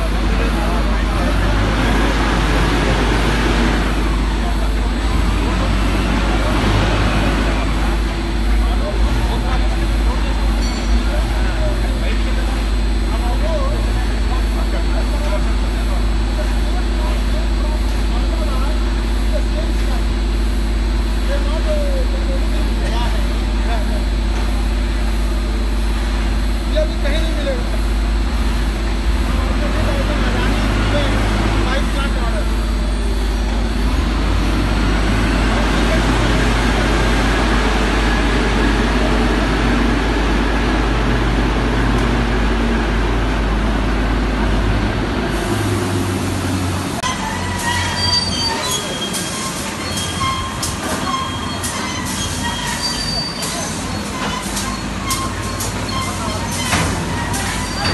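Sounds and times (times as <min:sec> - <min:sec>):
machinery clanks and clicks: 0:00.0 - 0:20.2, 0:21.3 - 0:57.9
machinery humming: 0:00.0 - 0:57.9
voices: 0:00.0 - 0:57.9.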